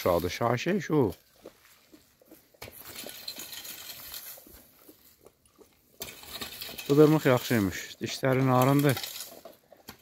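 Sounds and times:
rake scratching dry leaves: 2.7s - 5.2s, 6.0s - 10.0s.

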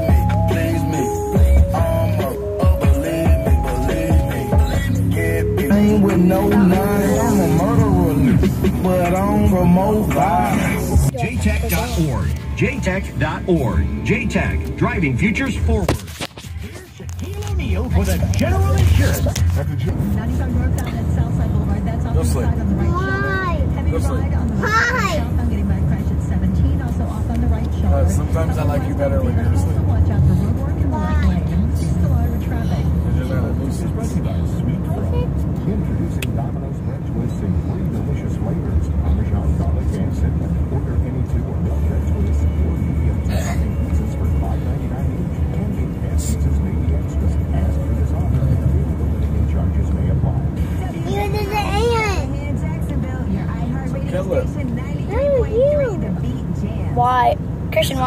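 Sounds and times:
low road rumble: 0.0s - 58.0s
rap song on car radio: 0.0s - 58.0s.

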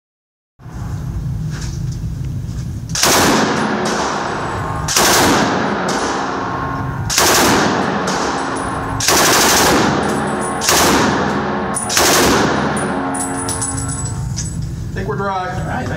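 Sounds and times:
automatic rifle bursts reverberating indoors: 3.0s - 4.2s, 7.1s - 13.2s.

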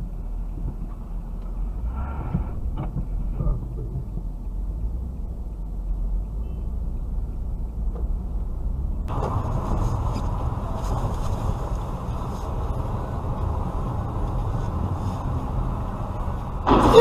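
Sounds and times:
car engine rumble: 0.0s - 17.0s
tyres on road: 0.0s - 17.0s.

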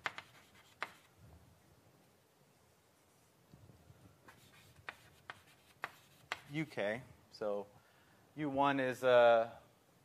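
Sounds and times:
chalk tapping on blackboard: 0.0s - 1.1s, 4.3s - 6.6s.

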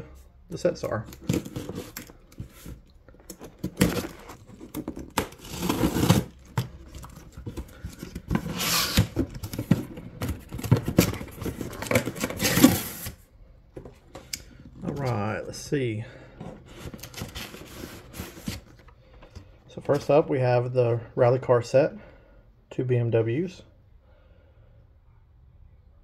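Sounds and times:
packing tape tearing: 1.1s - 13.2s.

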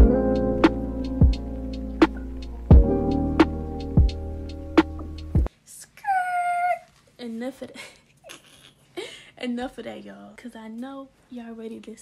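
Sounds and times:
woman speaking: 5.7s - 8.0s, 9.4s - 12.0s.

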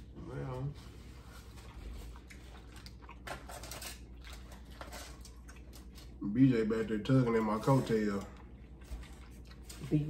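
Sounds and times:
chewing: 1.1s - 6.2s, 7.3s - 10.0s
small crinkles and clicks: 2.3s - 6.2s.

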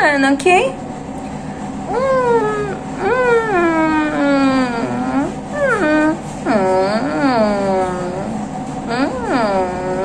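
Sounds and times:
woman humming mm-hmm: 1.9s - 10.0s.

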